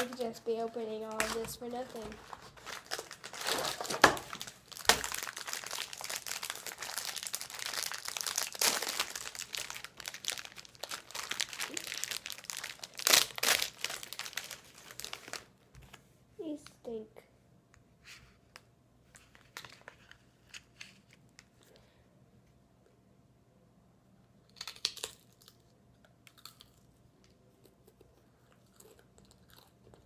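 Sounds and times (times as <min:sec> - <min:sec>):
plastic wrapper crinkling: 0:00.0 - 0:15.5, 0:19.2 - 0:21.1.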